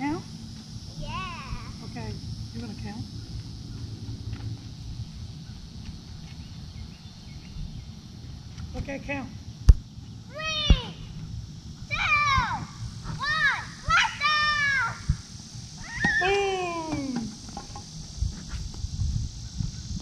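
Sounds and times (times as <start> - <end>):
child calling out sing-song: 1.0 - 1.8, 10.3 - 11.0, 11.9 - 15.1.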